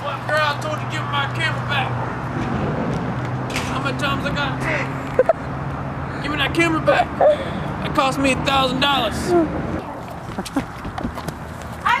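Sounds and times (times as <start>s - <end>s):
high-pitched voice: 9.3s - 9.6s.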